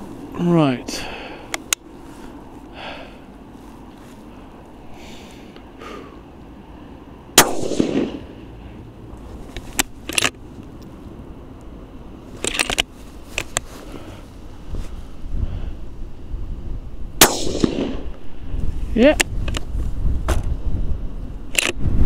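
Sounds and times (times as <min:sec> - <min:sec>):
suppressed rifle shot: 0:07.4 - 0:08.3, 0:17.2 - 0:18.1
rifle bolt metallic clicks: 0:09.5 - 0:10.9, 0:12.4 - 0:13.7, 0:21.5 - 0:21.8.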